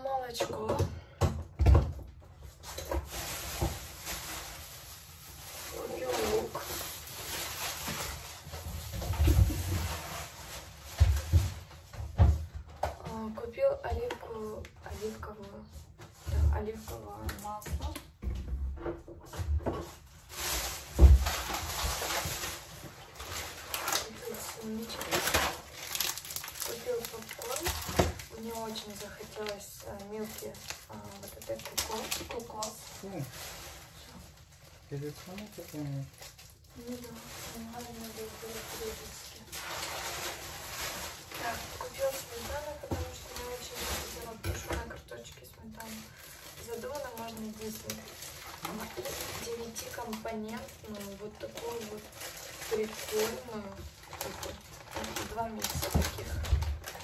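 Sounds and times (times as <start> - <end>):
dull thuds of groceries: 6.1 - 14.2, 15.5 - 22.9.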